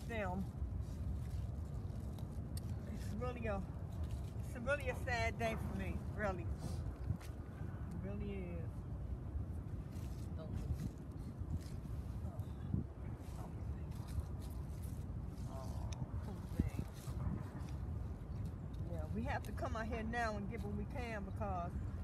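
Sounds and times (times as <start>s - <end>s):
steady low rumble: 0.0s - 22.0s
trowel digging in soil: 13.7s - 19.8s.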